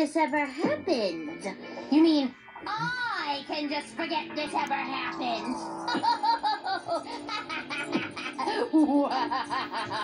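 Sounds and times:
background music with held note: 0:00.0 - 0:10.0
cartoon character laughing: 0:05.9 - 0:10.0.

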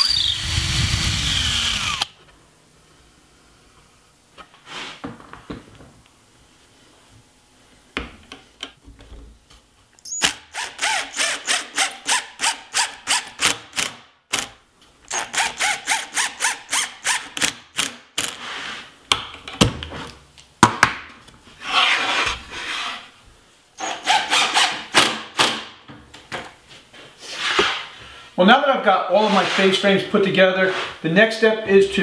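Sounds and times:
drill driving screws: 0:00.0 - 0:02.1, 0:10.1 - 0:14.5, 0:15.1 - 0:18.4, 0:23.8 - 0:25.2
screws squealing in wood: 0:00.0 - 0:02.1, 0:10.1 - 0:13.4, 0:15.1 - 0:17.3, 0:23.8 - 0:24.8.

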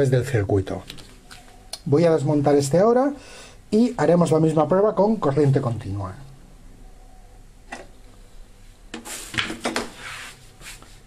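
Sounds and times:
knocks and scrapes on tabletop: 0:08.9 - 0:10.3.

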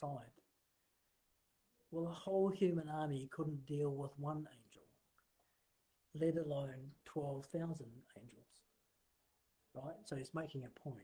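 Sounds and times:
man speaking: 0:00.0 - 0:00.6, 0:01.8 - 0:05.1, 0:06.0 - 0:08.8, 0:09.6 - 0:11.0.

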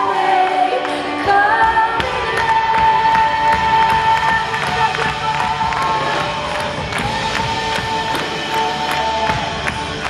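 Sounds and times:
steady drum beat: 0:01.7 - 0:10.0
worship band playing: 0:02.2 - 0:10.0.

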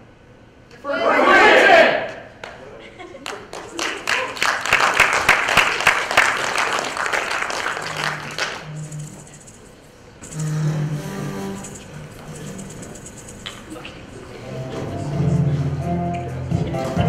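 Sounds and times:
audience applause: 0:03.2 - 0:08.7
music with low melody: 0:14.4 - 0:17.0.

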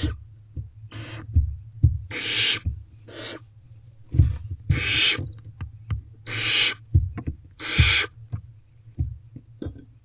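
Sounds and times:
owlets hissing: 0:02.1 - 0:03.5, 0:04.7 - 0:05.2, 0:06.3 - 0:06.8
birds knocking and scratching: 0:04.1 - 0:10.0.

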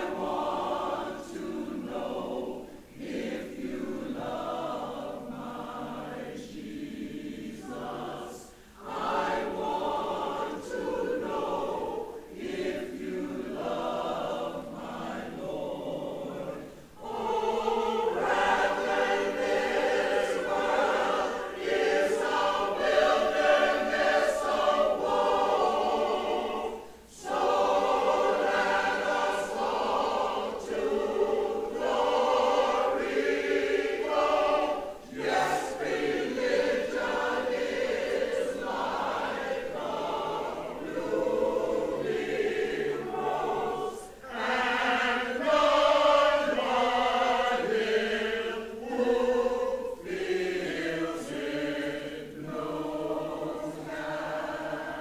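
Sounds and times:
mixed choir singing: 0:00.0 - 0:55.0.

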